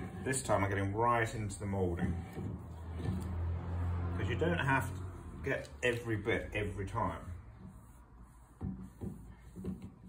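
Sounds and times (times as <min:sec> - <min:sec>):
cloth rubbing on wood: 0:00.0 - 0:10.0.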